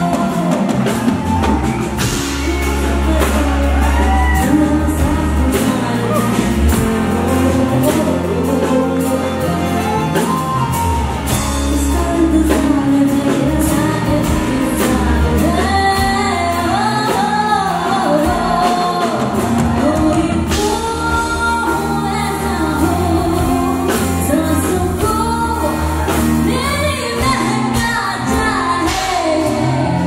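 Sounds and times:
live band with keyboard and harmonium: 0.0s - 30.0s
woman singing: 0.0s - 30.0s.

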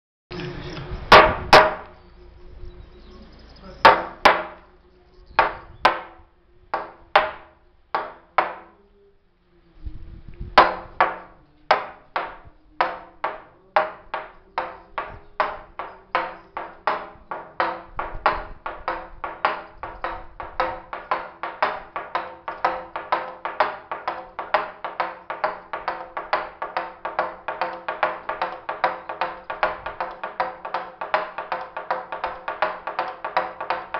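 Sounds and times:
mallet knocking on wooden beam: 1.1s - 2.0s, 3.8s - 4.6s, 5.4s - 6.2s, 6.8s - 8.8s, 10.6s - 33.9s.

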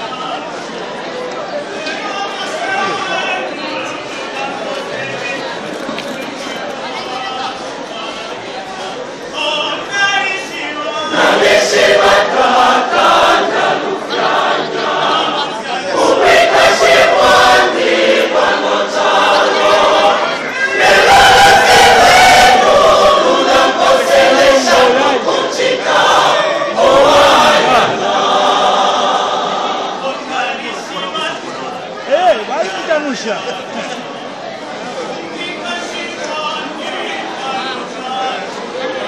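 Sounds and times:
church choir singing: 9.9s - 30.2s.

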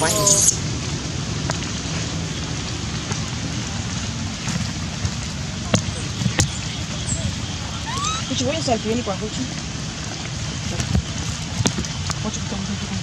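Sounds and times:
rain on stone and wet ground: 0.0s - 13.0s.

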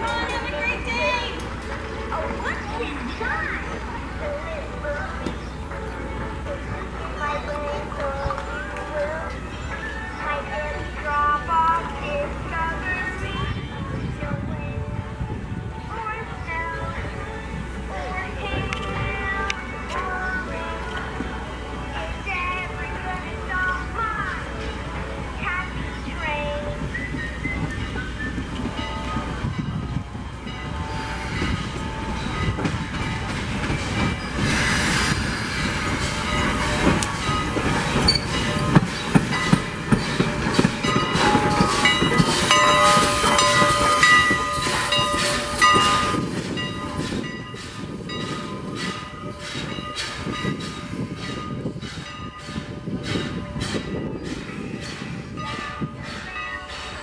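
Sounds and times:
steam locomotive beats: 0.0s - 57.0s
hissing steam: 30.7s - 57.0s
wheel squeal: 37.9s - 47.6s.

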